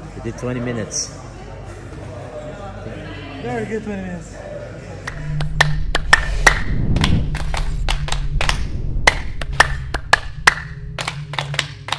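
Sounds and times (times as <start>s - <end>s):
low steady hum: 5.1s - 11.9s.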